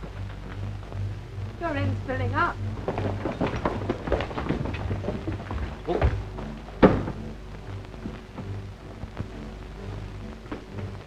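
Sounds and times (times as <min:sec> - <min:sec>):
steady low hum: 0:00.0 - 0:11.0
irregular knocks and clicks: 0:02.5 - 0:11.0.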